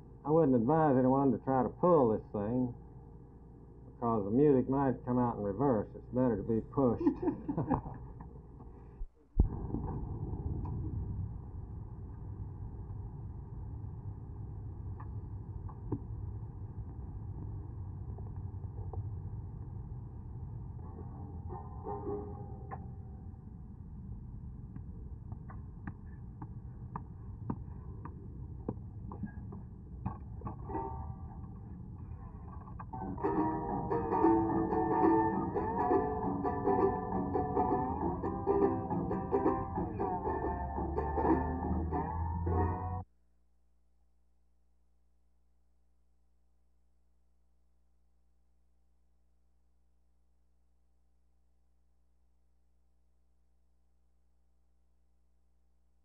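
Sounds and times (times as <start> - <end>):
low rumble: 2.7 - 43.0
plucked-string music: 20.9 - 23.0, 30.4 - 31.5, 32.9 - 43.0.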